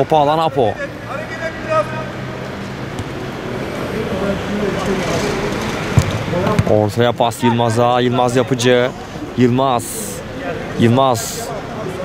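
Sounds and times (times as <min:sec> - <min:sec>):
football being kicked: 0:02.9 - 0:03.2, 0:05.9 - 0:06.8.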